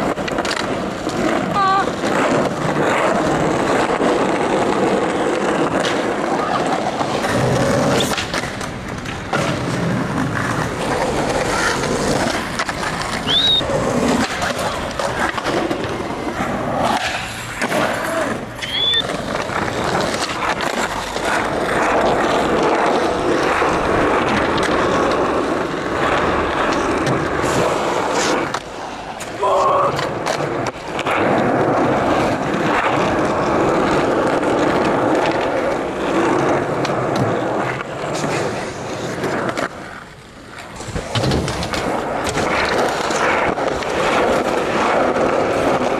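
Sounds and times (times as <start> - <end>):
skateboard clacks: 0.0 - 45.9
skateboard wheels rolling: 0.0 - 45.9.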